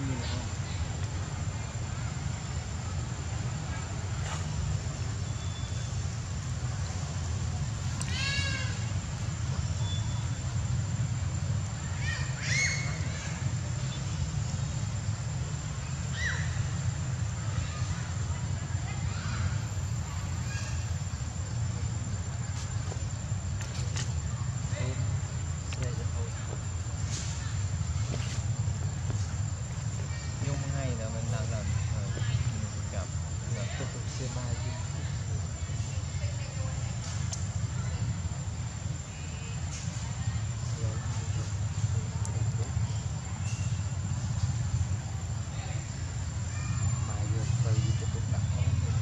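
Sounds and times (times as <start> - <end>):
macaques high-pitched calls: 12.0 - 13.6, 16.0 - 16.8.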